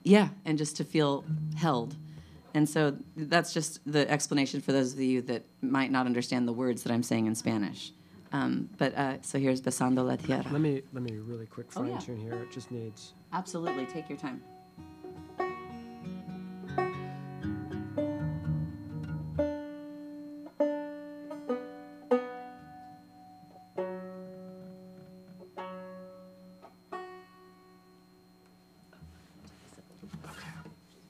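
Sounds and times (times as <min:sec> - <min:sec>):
stringed instruments being tuned: 0:01.2 - 0:02.5, 0:10.9 - 0:28.4.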